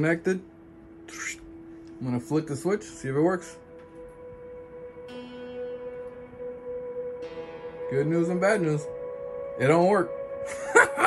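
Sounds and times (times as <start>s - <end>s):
bell-like drone tones: 0.0s - 11.0s
low held note: 0.0s - 11.0s.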